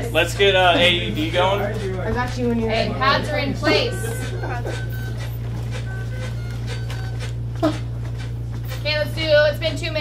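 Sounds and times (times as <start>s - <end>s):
chest compressions on manikin: 4.2s - 8.8s.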